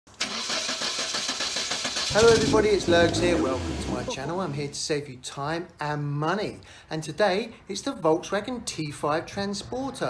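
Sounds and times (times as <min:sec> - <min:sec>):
car engine starting and running: 0:00.1 - 0:04.7.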